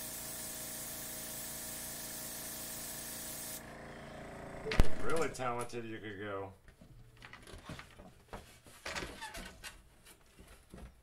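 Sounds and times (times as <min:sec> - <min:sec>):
board handling clicks and rustles: 0:06.7 - 0:11.0.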